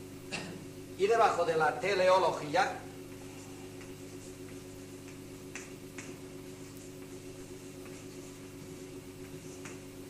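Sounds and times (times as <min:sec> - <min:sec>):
tape hum and hiss: 0:00.0 - 0:10.0.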